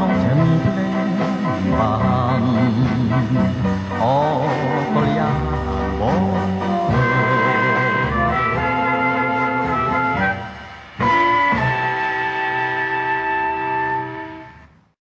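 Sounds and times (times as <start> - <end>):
instrumental pop music from vinyl: 0.0 - 14.7.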